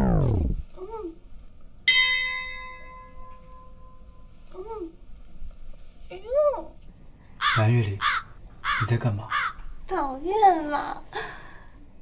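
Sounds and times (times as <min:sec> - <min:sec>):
crow cawing: 0:07.4 - 0:09.8
man talking: 0:07.5 - 0:08.1.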